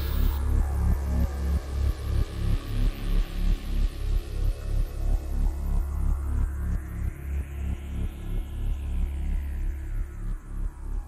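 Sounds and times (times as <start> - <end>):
heavy metal bass riff: 0.0 - 0.4.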